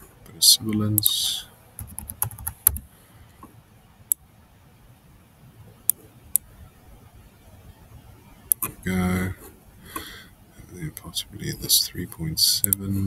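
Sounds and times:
computer keyboard typing: 0:01.8 - 0:02.9.

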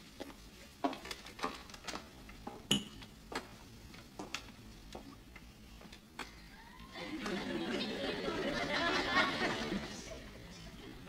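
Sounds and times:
studio audience laughing: 0:06.8 - 0:11.0.

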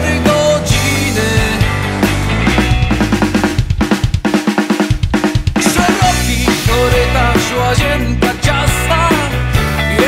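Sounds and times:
rock drum kit break: 0:00.0 - 0:10.0
sustained guitar chords: 0:00.1 - 0:04.3.

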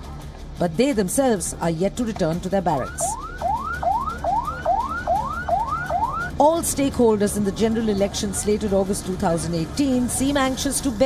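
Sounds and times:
ambulance siren sweeping: 0:02.7 - 0:06.4.

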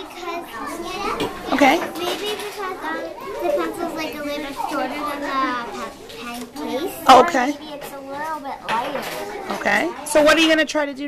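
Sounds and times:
child talking: 0:00.0 - 0:10.1.

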